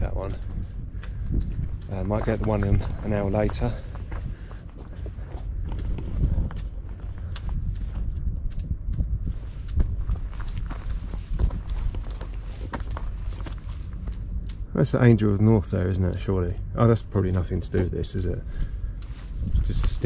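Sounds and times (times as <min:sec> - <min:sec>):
footsteps crunching on stony path: 0:00.0 - 0:14.7, 0:16.2 - 0:20.0
steady low rumble: 0:00.0 - 0:20.0.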